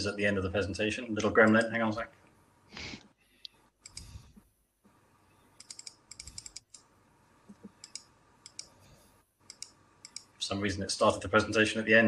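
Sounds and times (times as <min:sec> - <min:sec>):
typing on computer keyboard: 0:05.6 - 0:06.9, 0:09.5 - 0:10.3.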